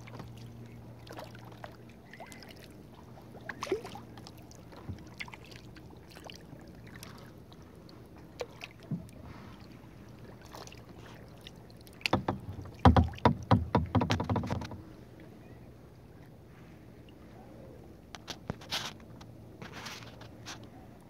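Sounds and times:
kayak paddle knocks and splashes: 0:03.3 - 0:07.3, 0:08.2 - 0:09.6, 0:10.3 - 0:15.0.

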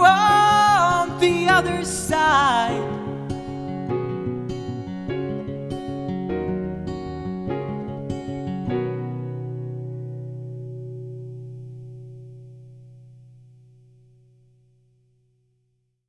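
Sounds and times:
acoustic guitar strumming: 0:00.0 - 0:14.4.

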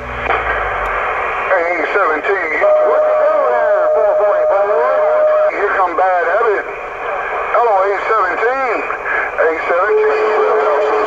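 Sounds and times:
radio static hiss: 0:00.1 - 0:11.0
garbled radio voices: 0:00.2 - 0:11.0
clear voice over radio: 0:01.5 - 0:06.7, 0:07.3 - 0:11.0.

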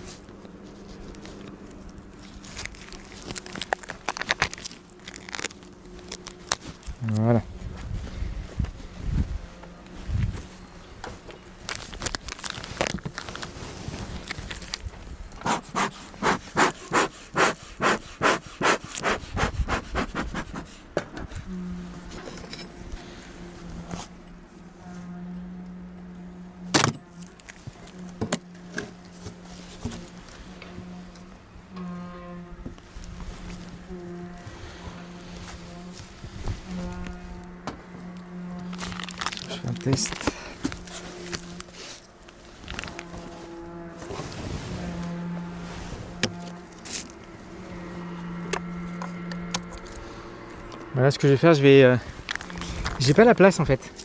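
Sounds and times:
steady low hum: 0:00.0 - 0:54.0
tool scraping plastic wrap: 0:02.2 - 0:07.2, 0:11.6 - 0:20.7, 0:38.2 - 0:47.2
bellows smoker puffing: 0:15.4 - 0:21.7.

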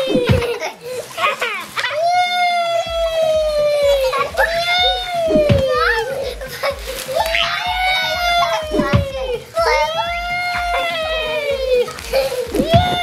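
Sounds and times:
child squealing: 0:00.0 - 0:00.6, 0:01.2 - 0:13.0.

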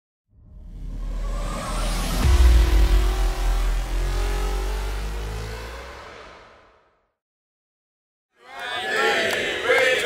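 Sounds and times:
low rumble: 0:00.3 - 0:06.8
whoosh: 0:00.3 - 0:07.0
rising tone: 0:00.3 - 0:07.1
deep bass boom: 0:00.4 - 0:06.9.

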